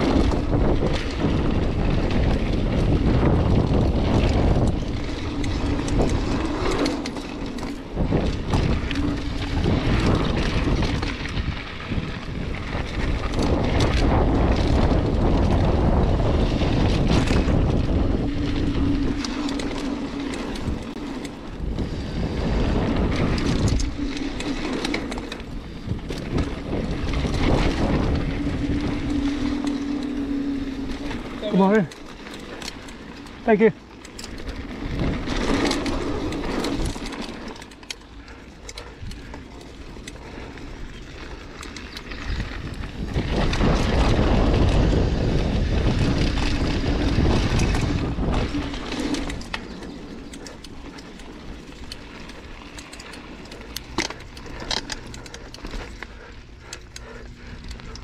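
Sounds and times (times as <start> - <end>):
bike clattering and rattling: 0.0 - 58.0
bike tyre noise: 0.0 - 58.0
wind buffeting microphone: 0.0 - 58.0.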